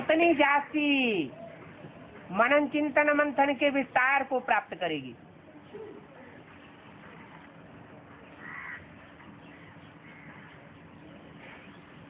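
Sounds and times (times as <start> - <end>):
faint steady background noise: 0.0 - 12.0
crow cawing: 8.4 - 8.9, 9.6 - 10.6.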